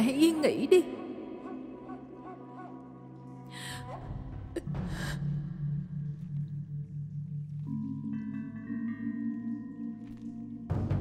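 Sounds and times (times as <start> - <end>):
woman breathing: 3.4 - 3.9, 4.8 - 5.4
soft music of held tones: 4.7 - 11.0.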